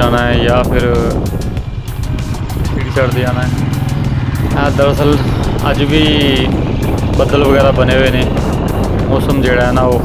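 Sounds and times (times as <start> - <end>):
motorcycle engine running: 0.0 - 10.0
wind rushing over microphone: 0.0 - 10.0.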